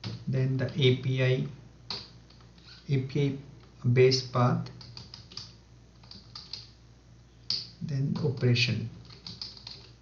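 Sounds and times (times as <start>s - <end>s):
keyboard typing: 4.7s - 6.7s, 7.5s - 10.0s.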